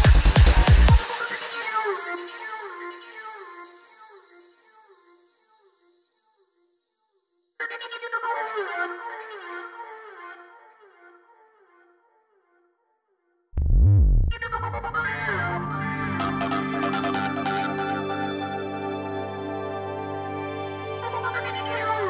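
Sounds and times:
repeating synthesizer pattern: 0:14.5 - 0:19.0.

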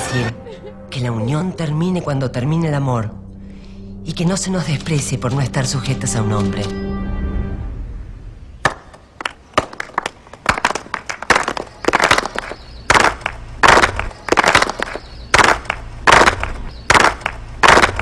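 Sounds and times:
women clapping in unison: 0:09.2 - 0:18.0.

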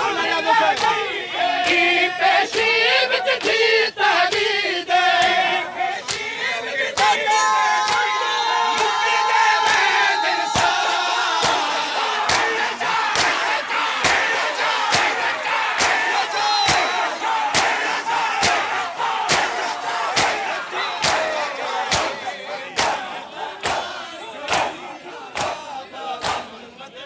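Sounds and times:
men shouting and chanting: 0:00.0 - 0:27.0
hands slapping chests: 0:11.4 - 0:20.4, 0:21.9 - 0:22.2, 0:25.4 - 0:25.6.

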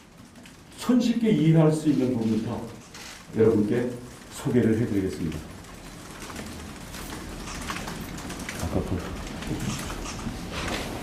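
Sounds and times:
papers rustling: 0:01.9 - 0:11.0.

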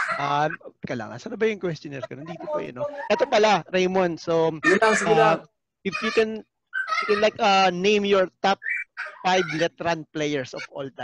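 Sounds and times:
people talking over a video call: 0:00.0 - 0:11.0.

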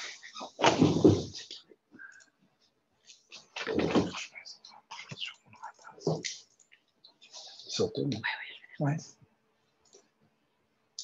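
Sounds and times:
person whispering: 0:04.2 - 0:06.5, 0:07.2 - 0:09.2.

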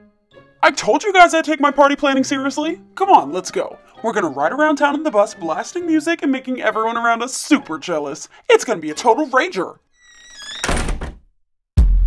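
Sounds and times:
door creaking open: 0:09.9 - 0:11.3
rush of swinging door: 0:10.2 - 0:11.2
deep thud: 0:11.8 - 0:12.0.

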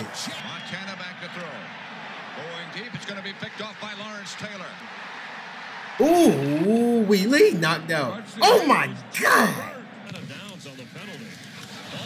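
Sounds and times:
faint sports commentary: 0:06.0 - 0:11.4.

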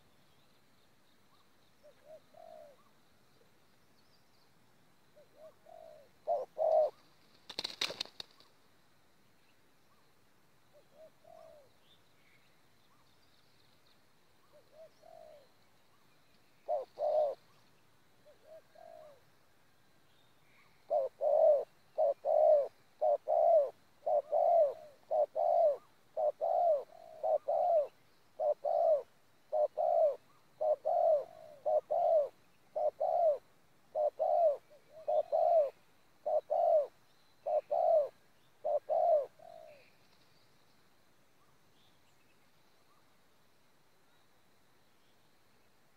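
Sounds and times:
dove cooing: 0:01.8 - 0:02.9, 0:05.2 - 0:08.4, 0:10.7 - 0:11.7, 0:14.5 - 0:15.5, 0:16.6 - 0:17.6, 0:18.2 - 0:19.3, 0:20.8 - 0:40.0.

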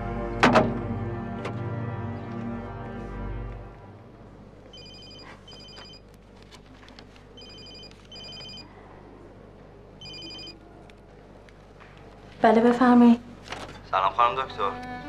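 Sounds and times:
phone ringtone beeps: 0:04.7 - 0:06.0, 0:07.4 - 0:08.7, 0:10.0 - 0:10.6.

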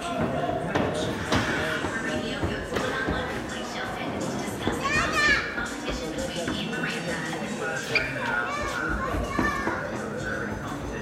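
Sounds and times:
background music: 0:00.0 - 0:11.0
chatter of people: 0:00.0 - 0:11.0
children's voices: 0:04.5 - 0:05.8, 0:08.0 - 0:10.2.

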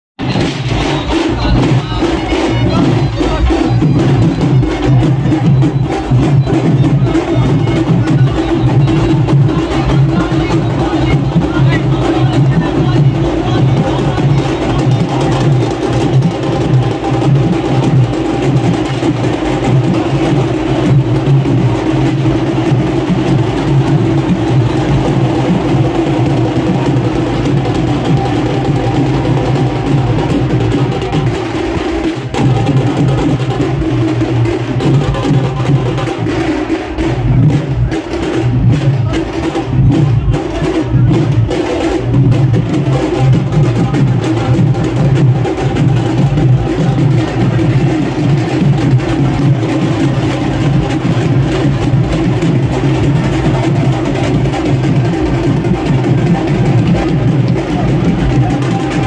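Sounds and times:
fast drum and percussion strikes: 0:00.1 - 0:59.0
loud procession music: 0:00.2 - 0:59.0.

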